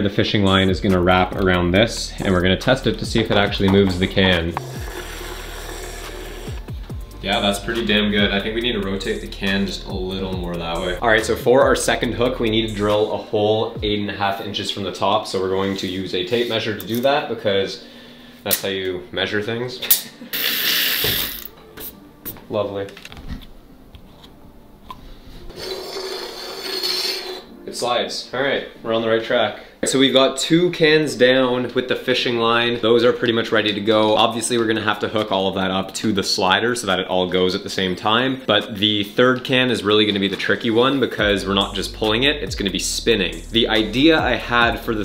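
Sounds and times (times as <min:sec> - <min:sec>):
background music: 0:00.0 - 0:45.0
can scraping across tabletop: 0:04.2 - 0:06.7, 0:25.4 - 0:27.6.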